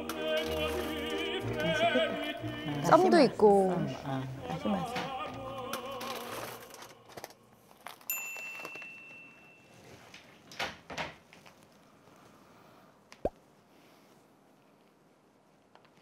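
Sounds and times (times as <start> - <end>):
music with singing: 0.0 - 7.2
high ding: 8.1 - 9.8.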